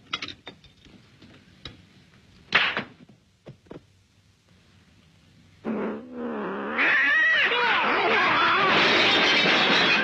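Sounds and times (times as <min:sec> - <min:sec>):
cats yowling and screeching: 0:06.5 - 0:09.1.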